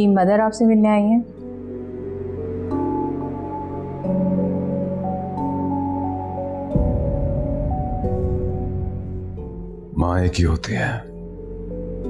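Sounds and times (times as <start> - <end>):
ambient music of long held notes: 1.3 - 12.0.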